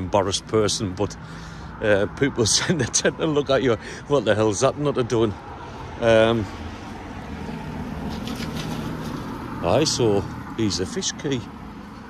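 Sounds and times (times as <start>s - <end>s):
engine humming: 0.0s - 12.0s
outdoor background noise: 0.0s - 12.0s.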